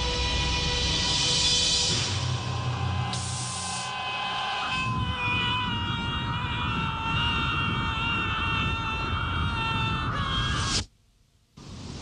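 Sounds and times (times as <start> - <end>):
long sustained high tones: 1.3 - 5.3
rushing wind rumble: 4.6 - 10.9.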